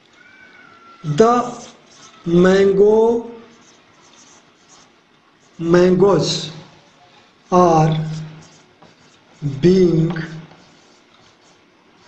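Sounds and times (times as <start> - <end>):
whiteboard marker squeaking: 0.9 - 12.0
man speaking: 1.0 - 3.5, 5.6 - 6.7, 7.5 - 8.4, 9.4 - 10.5.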